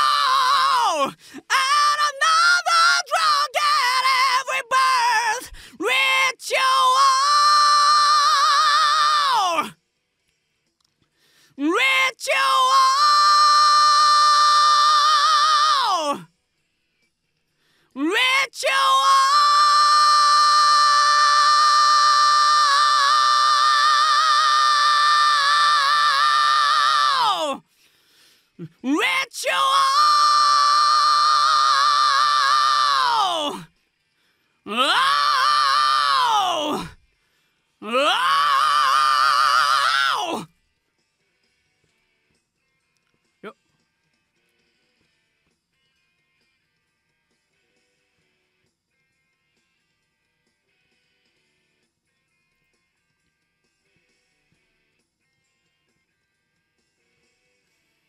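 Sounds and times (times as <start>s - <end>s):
man singing high belted note: 0.0s - 9.7s, 11.6s - 16.2s, 18.0s - 27.6s, 28.6s - 33.6s, 34.7s - 36.9s, 37.8s - 40.5s.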